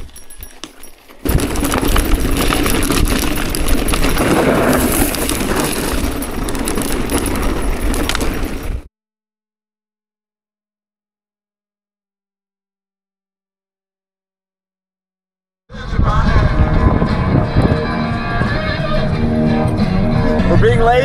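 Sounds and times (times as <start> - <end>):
bike rattling and clicking: 0.0 - 8.9
tyres crunching over loose ground: 0.0 - 8.9
wind rumbling on microphone: 0.0 - 8.9, 15.7 - 20.8.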